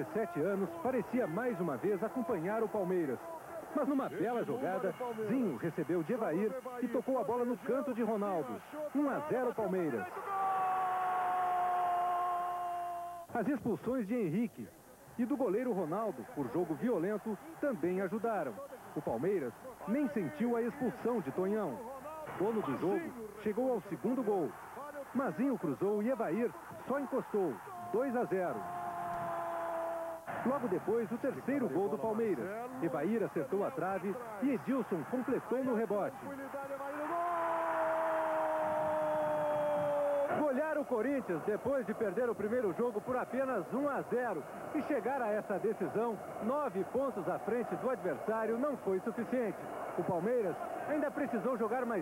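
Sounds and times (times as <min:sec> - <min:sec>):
stadium crowd noise: 0:00.0 - 0:52.0.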